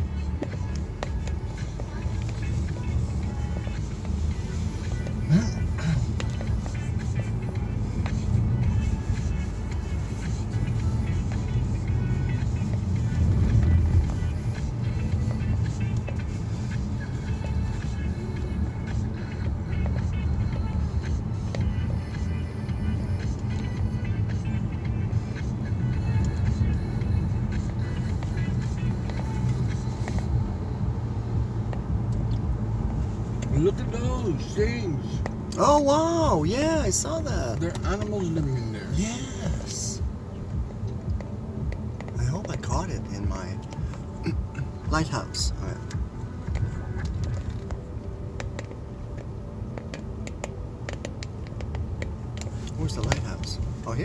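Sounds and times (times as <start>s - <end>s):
car cabin road rumble: 0.0s - 54.0s
music playing: 0.0s - 54.0s.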